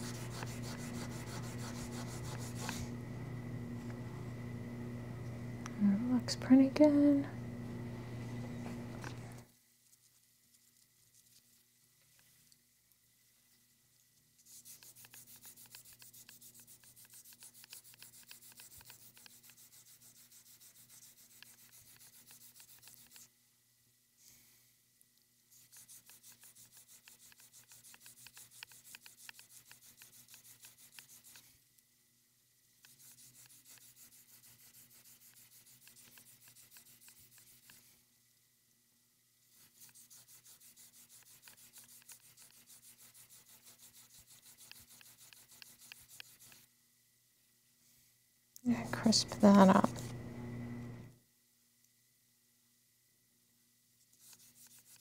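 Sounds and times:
abrasive stone rubbing enamel: 39.6s - 46.6s.

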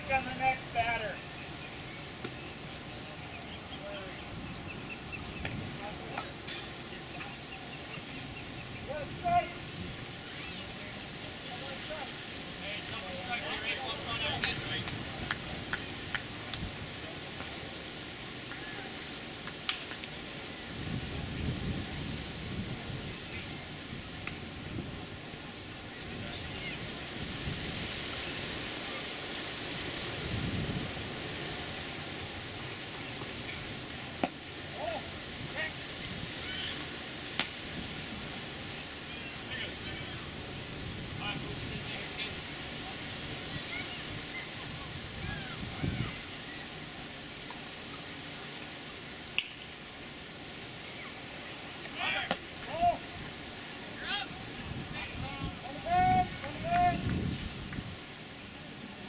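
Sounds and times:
wind gusts on microphone: 0.0s - 48.6s, 52.0s - 58.4s
steady outdoor hiss: 0.0s - 59.0s
baseballs striking glove or bat: 34.2s - 34.4s.

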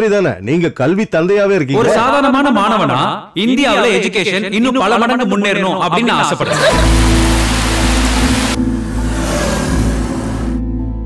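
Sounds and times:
rain hiss: 6.7s - 10.6s
low bass drone: 6.8s - 11.0s.

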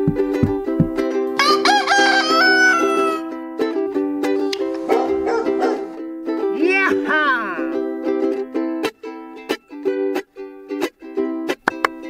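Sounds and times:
plucked ukulele music: 0.0s - 12.0s
rooster crowing: 1.4s - 3.4s, 4.9s - 6.0s.

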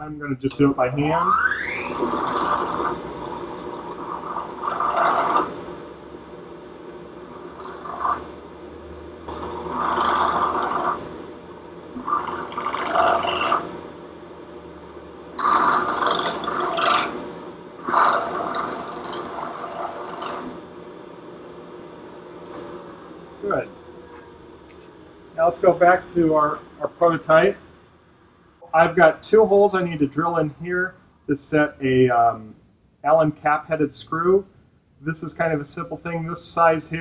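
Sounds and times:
milling machine spindle hum: 0.0s - 37.0s
metal scraping cuts: 1.5s - 5.6s, 9.3s - 11.1s, 12.0s - 13.7s, 15.4s - 17.2s, 17.8s - 20.6s.

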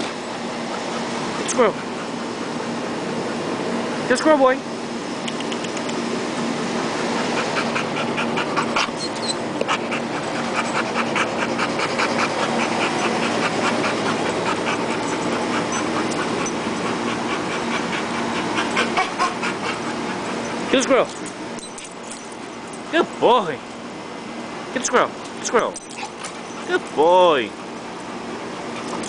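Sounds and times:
dog panting: 0.0s - 3.8s, 6.9s - 22.8s, 25.8s - 29.0s
steady low hum: 0.0s - 29.0s.

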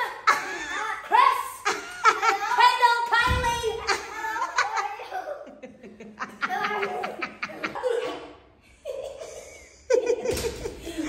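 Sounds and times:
voices: 0.0s - 8.4s
people laughing: 0.0s - 11.0s.

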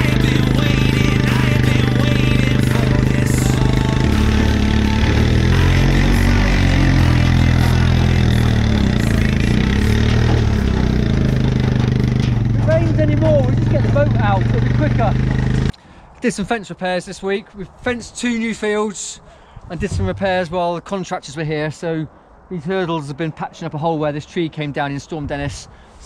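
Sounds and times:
quad bike engine under load: 0.0s - 15.8s.

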